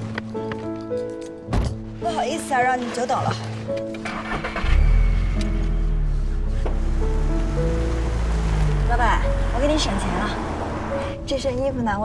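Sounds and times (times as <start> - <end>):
background music: 0.0 - 12.0
car engine starting and rumbling: 2.7 - 12.0.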